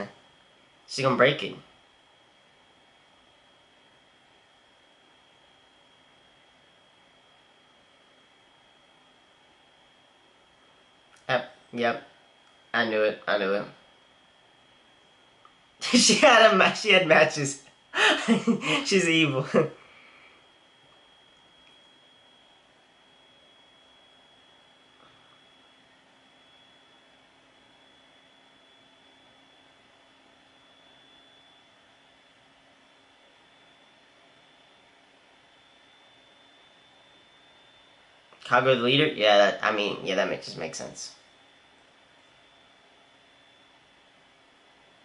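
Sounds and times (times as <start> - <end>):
room and microphone hiss: 0.0 - 45.0
thin high whine: 0.0 - 45.0
man bursting out laughing: 18.0 - 19.8.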